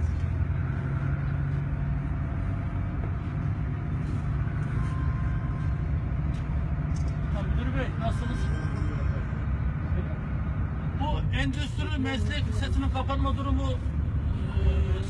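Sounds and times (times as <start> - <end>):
minibus engine rumble: 0.0 - 15.0
road noise: 0.0 - 15.0.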